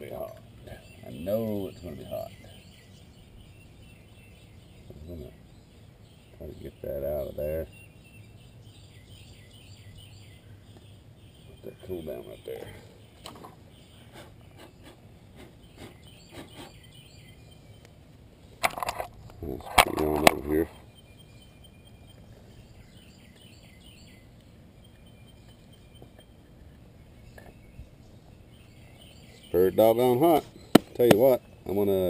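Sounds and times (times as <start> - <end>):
faint bird chirps: 0.0 - 32.0.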